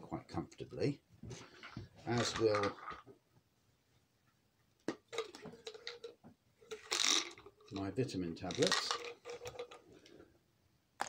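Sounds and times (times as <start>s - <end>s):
tablets clicking and rattling: 2.2s - 2.9s, 5.0s - 7.8s, 8.4s - 9.8s.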